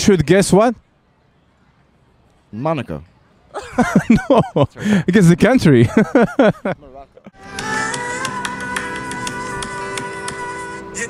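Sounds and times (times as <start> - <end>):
music played from a phone: 7.4 - 11.0.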